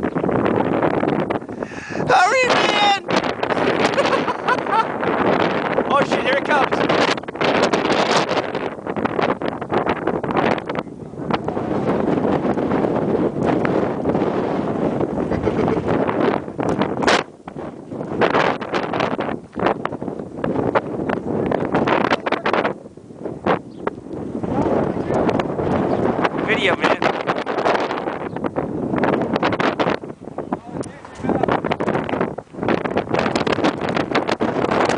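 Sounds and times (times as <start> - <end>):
strong wind buffeting microphone: 0.0 - 34.9.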